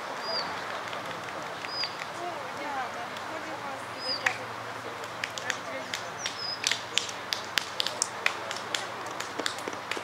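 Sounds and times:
sharp clicks and taps: 5.0s - 10.0s.

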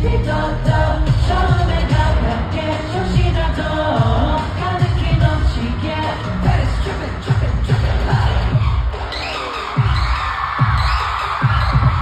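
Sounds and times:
person singing: 0.0s - 8.6s
heavy bass beat: 0.0s - 12.0s
pop song over arena sound system: 0.0s - 12.0s.

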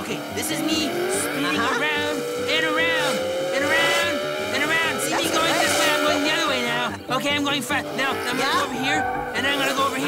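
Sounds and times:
race car engine whine: 0.0s - 10.0s
tyre squeal screeches: 8.2s - 10.0s.

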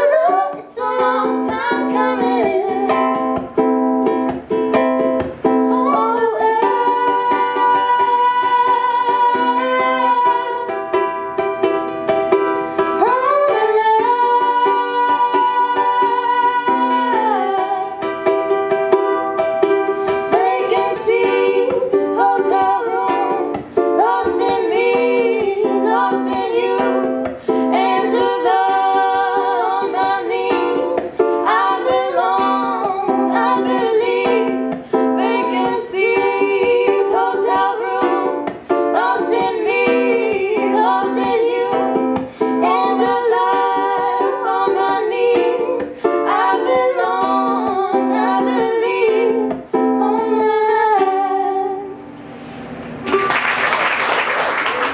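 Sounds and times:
women singing in harmony: 0.0s - 3.4s, 5.4s - 11.2s, 12.8s - 18.6s, 19.6s - 52.2s
ukulele: 0.0s - 54.9s.

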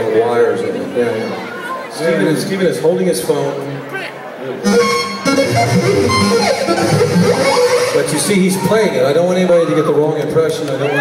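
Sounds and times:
sliding synthesizer notes: 4.6s - 8.5s.

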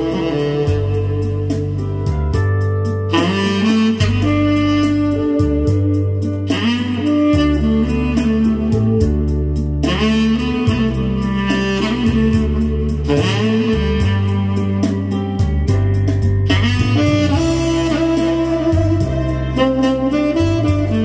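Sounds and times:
slow rock backing track: 0.0s - 21.0s
tenor saxophone melody: 0.0s - 21.0s.

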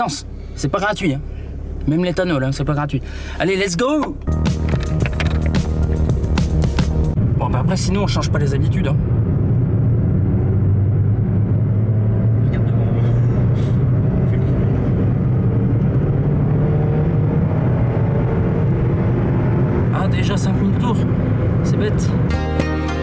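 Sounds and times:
car engine accelerating at high revs: 9.0s - 22.3s.

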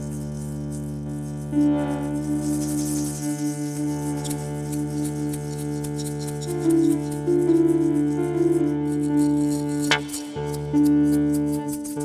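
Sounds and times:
hand percussion clicks and rattles: 2.7s - 12.0s.

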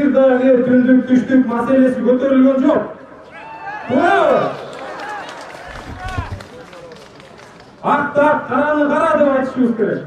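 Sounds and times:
crowd talking outdoors: 0.0s - 10.0s.

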